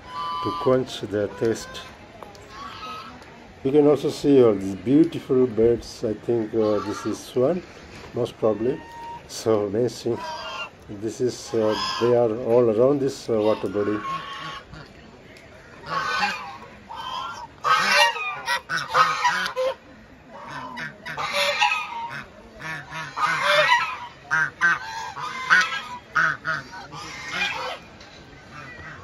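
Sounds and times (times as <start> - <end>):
geese honking: 0.0 - 3.2, 6.4 - 7.6, 8.4 - 14.9, 15.6 - 29.0.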